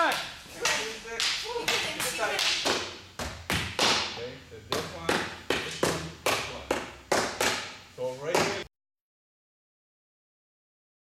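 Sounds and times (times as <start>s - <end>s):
stick striking padded dummy: 0.0s - 8.7s.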